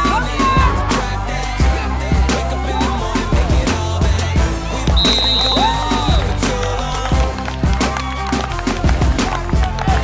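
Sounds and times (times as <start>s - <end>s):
hip hop drum beat and bass: 0.0s - 10.0s.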